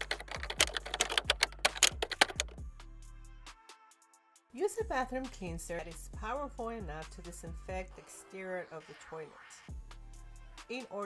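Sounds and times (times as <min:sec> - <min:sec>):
keyboard typing clicks: 0:00.0 - 0:02.6
background music with low notes: 0:00.0 - 0:11.0.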